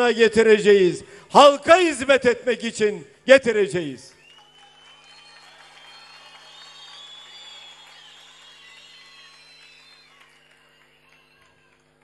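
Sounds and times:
muffled crowd cheering and applause: 0:04.2 - 0:12.0.

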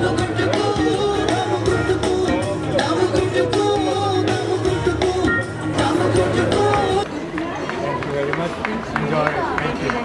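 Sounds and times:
background music: 0:00.0 - 0:07.1
people talking outdoors: 0:00.0 - 0:10.0.

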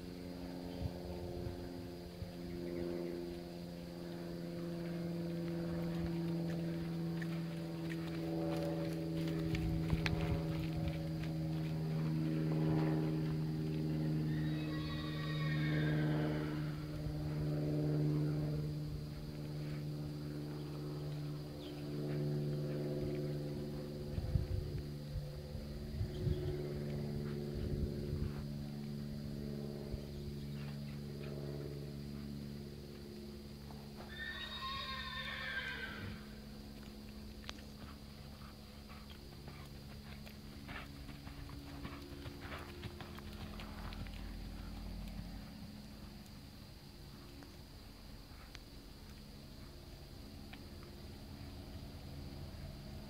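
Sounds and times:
low drone of held tones: 0:00.0 - 0:34.5, 0:35.9 - 0:53.0
hoofbeats: 0:04.1 - 0:17.5, 0:33.6 - 0:46.2
horse whinnying: 0:14.3 - 0:16.8, 0:34.1 - 0:36.3.

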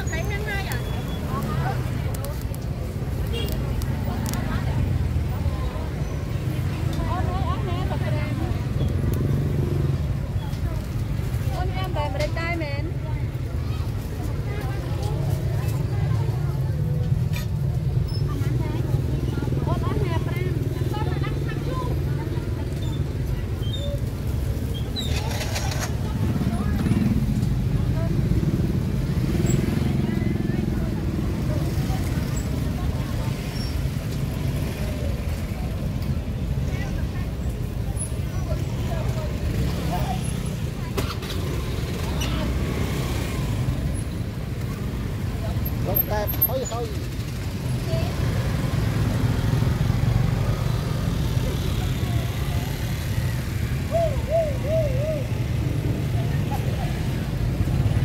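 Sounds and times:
distant voices chattering: 0:00.0 - 0:58.0
motorbike and traffic engines rumbling: 0:00.0 - 0:58.0.

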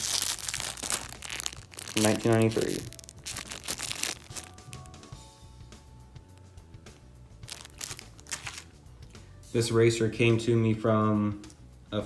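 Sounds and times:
plastic bag crinkling: 0:00.0 - 0:05.1, 0:07.4 - 0:08.7.

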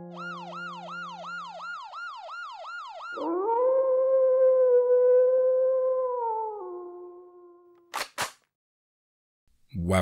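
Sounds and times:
siren-like wail in falling sweeps: 0:00.0 - 0:06.7.

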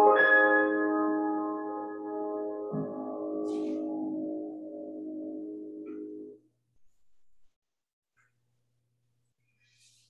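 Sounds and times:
piano chord ringing: 0:00.0 - 0:06.4.

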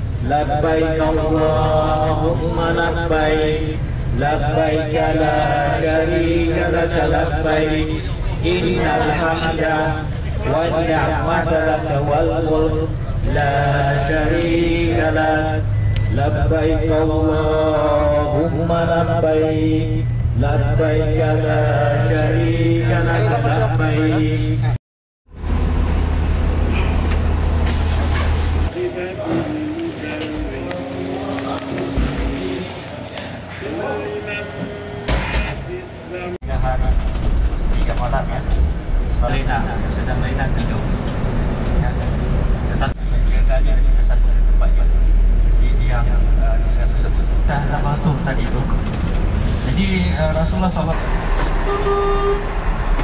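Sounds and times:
bus engine idling: 0:00.0 - 0:35.0, 0:35.7 - 0:53.0
voices: 0:00.2 - 0:24.8, 0:28.7 - 0:53.0
short horn toot: 0:51.3 - 0:53.0.

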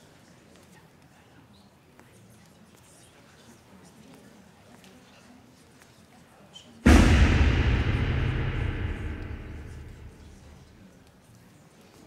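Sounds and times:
deep impact boom: 0:06.9 - 0:10.7.

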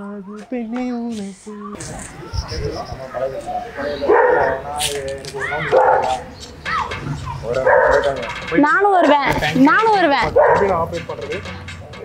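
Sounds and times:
dog yelping: 0:03.0 - 0:04.7, 0:05.4 - 0:08.2, 0:10.3 - 0:10.8
dog barking: 0:03.1 - 0:04.8, 0:05.6 - 0:06.3, 0:07.2 - 0:08.2, 0:10.3 - 0:10.8.

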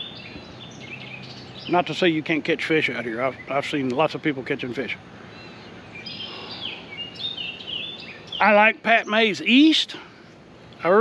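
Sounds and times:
birds chirping and whistling: 0:00.0 - 0:04.2, 0:05.0 - 0:10.7
faint steady background noise: 0:00.0 - 0:11.0.

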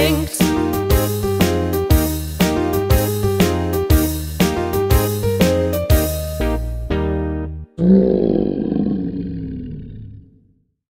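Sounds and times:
dinosaur roar: 0:07.8 - 0:10.6.

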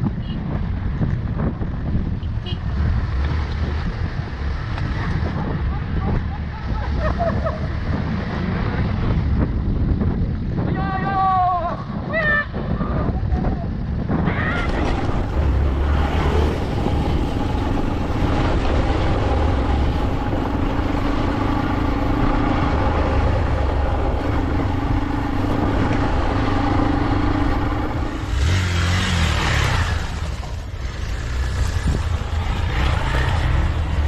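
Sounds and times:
rush of noise: 0:03.7 - 0:34.0
motorcycle engine running: 0:14.8 - 0:34.0.

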